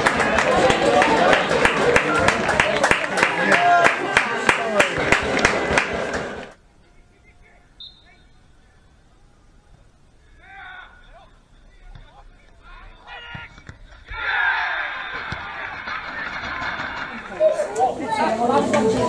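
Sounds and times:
footballers shouting: 0.0 - 6.5, 10.1 - 18.2
crowd voices: 0.0 - 19.0.

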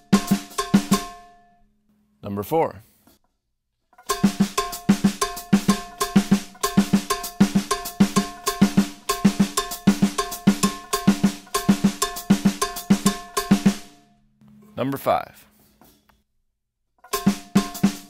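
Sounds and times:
drum kit latin rhythm: 0.0 - 1.5, 4.0 - 14.7, 17.0 - 18.0.

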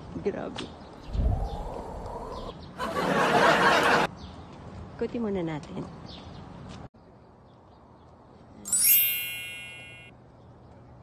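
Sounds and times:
small bell ringing: 8.7 - 10.1.

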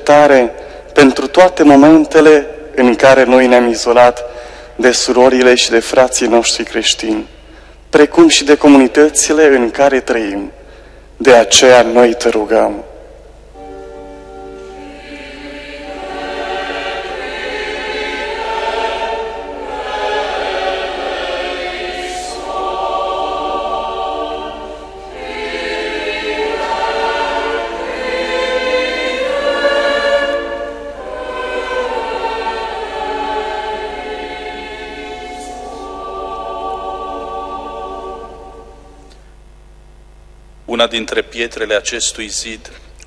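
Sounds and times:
choir singing slowly: 0.0 - 7.3, 7.9 - 10.6, 11.2 - 39.4.

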